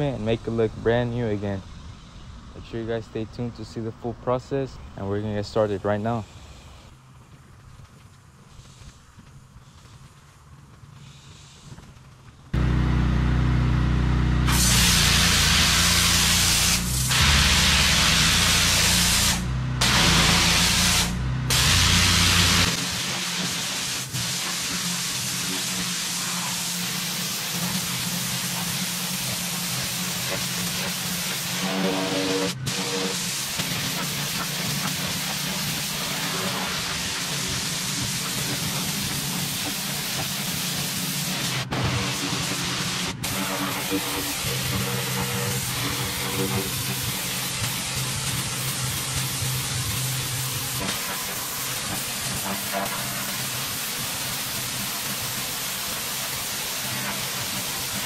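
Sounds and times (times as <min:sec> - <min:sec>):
pressure washer spraying concrete: 0:12.6 - 0:58.0.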